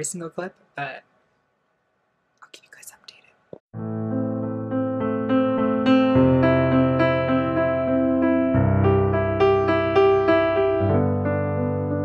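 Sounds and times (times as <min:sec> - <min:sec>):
woman whispering: 0:02.4 - 0:03.4.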